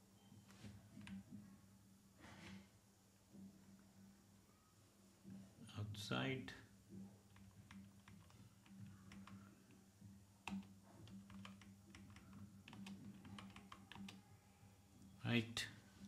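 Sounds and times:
faint keyboard typing: 0.2s - 1.5s, 7.0s - 14.4s.

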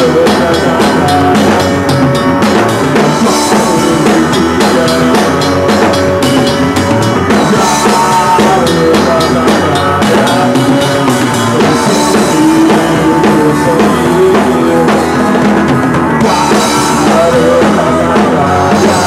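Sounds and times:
drum kit beat: 0.0s - 19.0s
rock band playing live: 0.0s - 19.0s.

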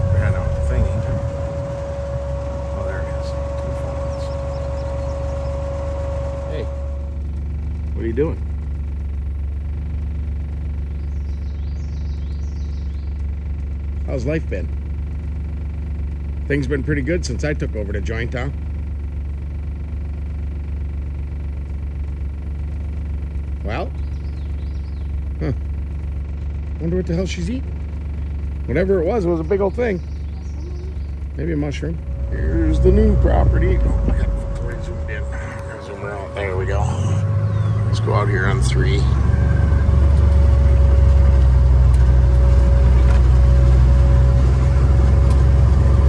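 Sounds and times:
buggy engine low hum: 0.0s - 46.0s
engine whine: 0.0s - 46.0s.

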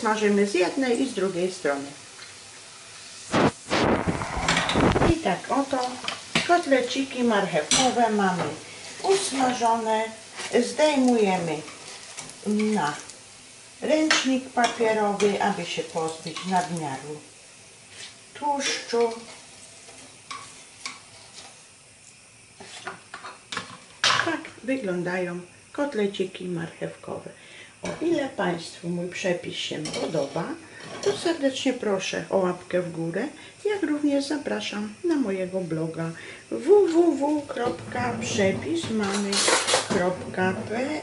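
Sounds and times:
patties sizzling in a frying pan: 0.0s - 41.0s
spatula scraping a pan: 3.3s - 5.2s, 17.9s - 21.7s, 22.6s - 23.7s, 36.9s - 41.0s.

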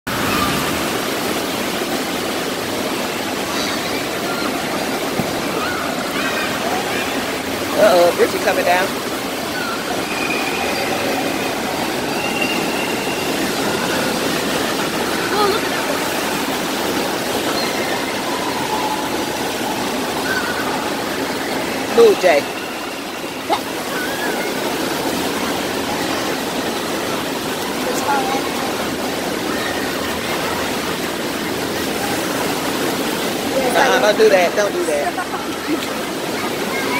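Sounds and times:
waves breaking and churning: 0.1s - 36.9s.

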